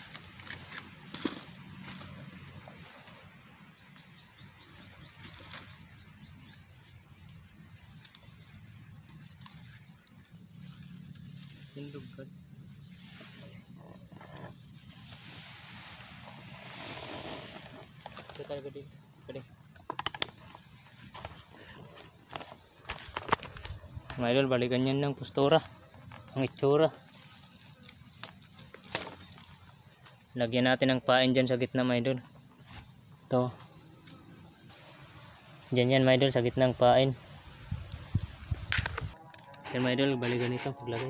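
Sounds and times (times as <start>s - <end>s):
dry bamboo and leaves crackling: 0.0s - 41.0s
outdoor background noise: 0.0s - 41.0s.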